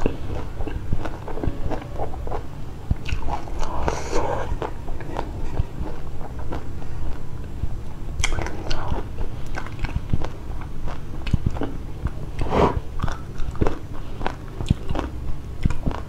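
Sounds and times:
crunchy chewing: 0:00.0 - 0:07.6, 0:08.2 - 0:16.0
wet mouth sounds: 0:08.2 - 0:16.0.

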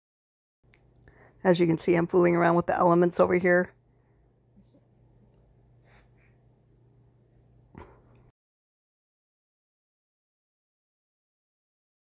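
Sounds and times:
low hum: 0:00.7 - 0:08.3.

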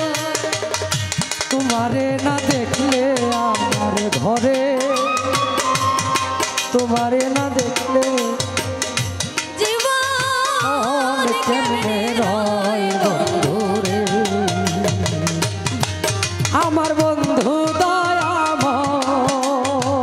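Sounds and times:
rapid hand-drum strokes: 0:00.0 - 0:20.0.

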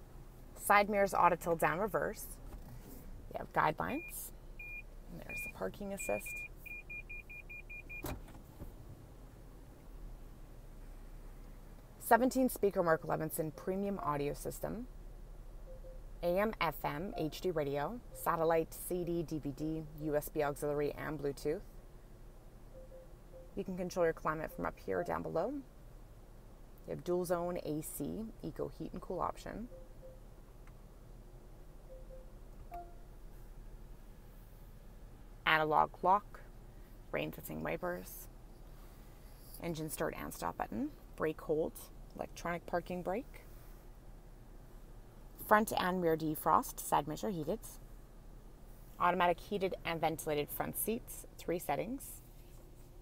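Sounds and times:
parking sensor beeping: 0:03.8 - 0:08.3, 0:15.6 - 0:18.6, 0:22.7 - 0:25.6, 0:29.6 - 0:30.4, 0:31.8 - 0:33.2
short electronic beep: 0:15.7 - 0:16.0, 0:22.7 - 0:23.6, 0:31.9 - 0:33.1.

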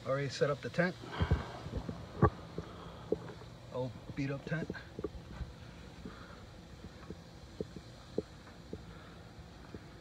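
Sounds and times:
dull low thumps: 0:01.1 - 0:03.3.

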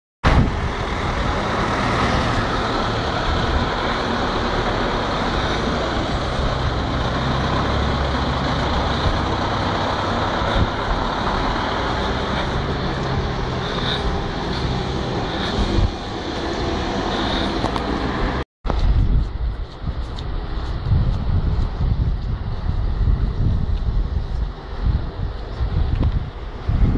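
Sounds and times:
road traffic rumble: 0:00.2 - 0:26.9.

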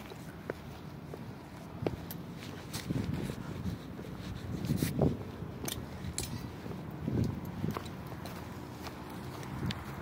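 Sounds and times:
footsteps on grass and dirt: 0:00.0 - 0:10.0.

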